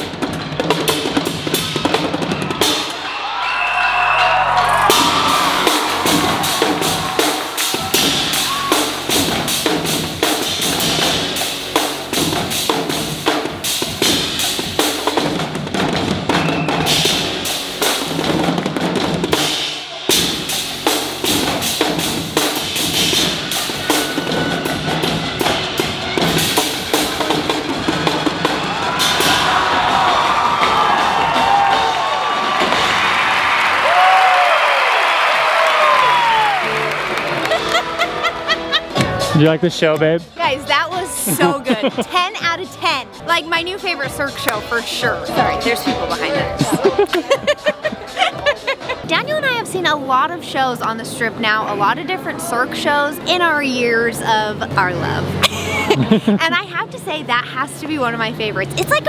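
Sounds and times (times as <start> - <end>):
live band music: 4.3 - 29.4.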